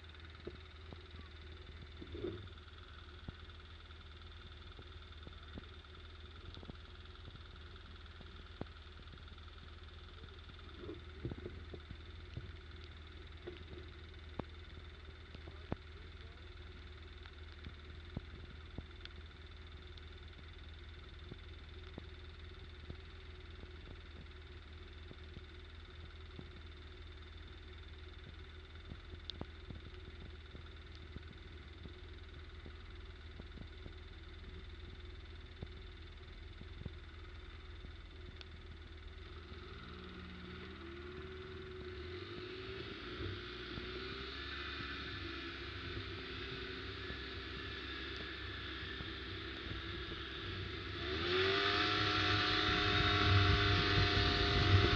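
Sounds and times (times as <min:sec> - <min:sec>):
faint ticks: 0:00.0 - 0:51.4
atv engine idling and revving: 0:00.0 - 0:54.9.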